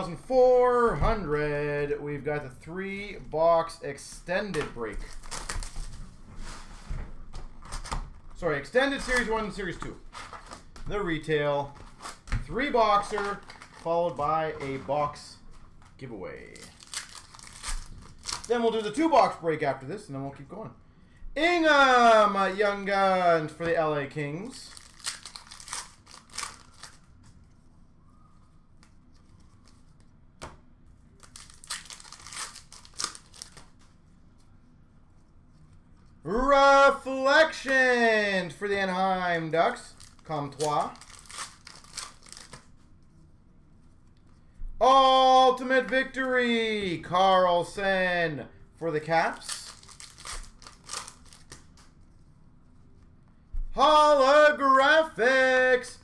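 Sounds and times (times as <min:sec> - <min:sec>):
foil wrappers tearing and crinkling: 0:05.0 - 0:05.9, 0:16.5 - 0:18.6, 0:24.7 - 0:27.1, 0:31.2 - 0:33.8, 0:39.9 - 0:42.7, 0:49.4 - 0:51.9.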